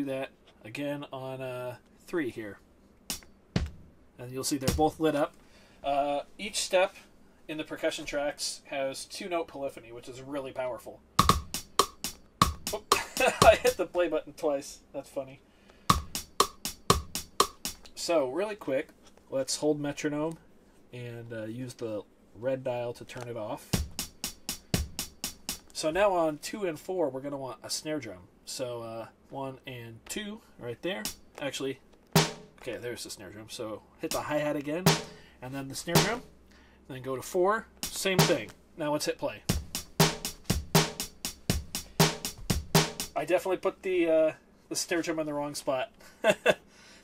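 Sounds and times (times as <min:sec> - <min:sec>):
metronome clicking: 0:03.1 - 0:03.7, 0:11.2 - 0:13.8, 0:15.9 - 0:18.0, 0:23.8 - 0:25.8
hi-hat: 0:03.1 - 0:03.9, 0:11.2 - 0:13.9, 0:15.8 - 0:17.9, 0:23.6 - 0:25.9, 0:31.0 - 0:31.4, 0:34.1 - 0:36.4, 0:37.8 - 0:38.6, 0:39.4 - 0:43.2
snare hits: 0:03.1 - 0:03.9, 0:04.6 - 0:05.0, 0:11.2 - 0:13.8, 0:15.9 - 0:17.8, 0:32.2 - 0:32.7, 0:34.9 - 0:35.3, 0:35.9 - 0:36.3, 0:37.8 - 0:38.6, 0:39.5 - 0:43.2
bass drum: 0:03.1 - 0:04.0, 0:04.6 - 0:05.0, 0:11.2 - 0:13.8, 0:15.9 - 0:17.8, 0:23.8 - 0:25.7, 0:32.2 - 0:32.6, 0:34.9 - 0:35.3, 0:35.9 - 0:36.4, 0:37.8 - 0:38.5, 0:39.5 - 0:43.2
bass drum hits: 0:03.6 - 0:03.9.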